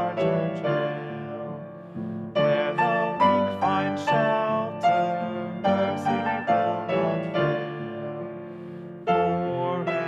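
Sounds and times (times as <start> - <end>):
piano playing hymn chords: 0.0 - 10.0.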